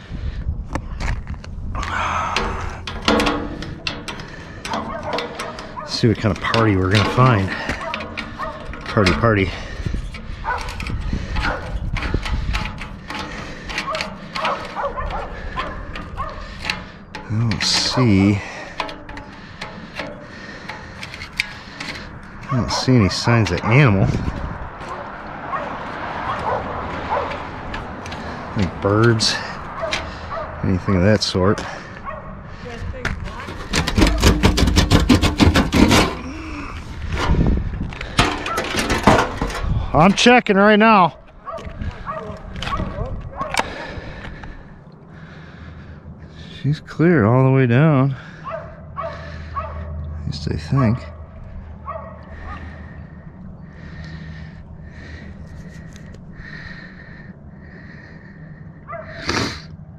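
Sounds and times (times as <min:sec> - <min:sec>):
metal chimney cap clicks and scrapes: 0:01.0 - 0:31.7, 0:33.3 - 0:40.2
dog barking: 0:04.9 - 0:05.9, 0:07.8 - 0:08.6, 0:10.4 - 0:10.7, 0:11.4 - 0:11.8, 0:13.9 - 0:16.5, 0:22.5 - 0:23.8, 0:24.9 - 0:27.4, 0:29.8 - 0:30.6, 0:32.0 - 0:32.4, 0:41.4 - 0:43.6, 0:48.4 - 0:50.0, 0:51.8 - 0:52.7, 0:58.9 - 0:59.2.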